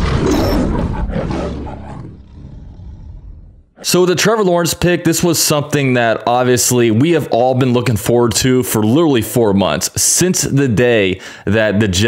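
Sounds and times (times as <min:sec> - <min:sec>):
big cat roaring: 0:00.0 - 0:03.8.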